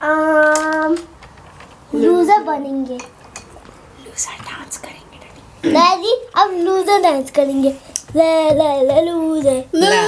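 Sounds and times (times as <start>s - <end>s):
person whispering: 4.0s - 5.4s.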